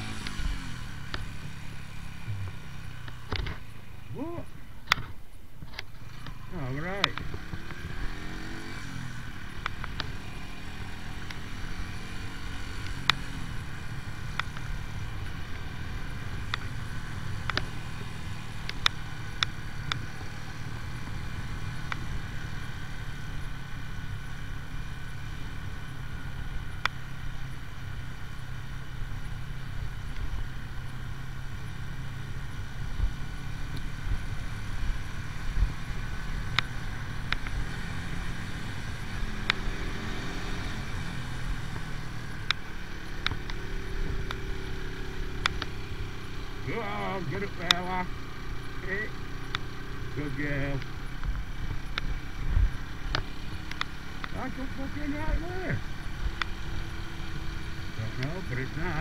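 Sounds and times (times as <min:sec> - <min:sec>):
motorcycle engine running: 0:00.0 - 0:59.0
road and wind noise: 0:00.0 - 0:59.0.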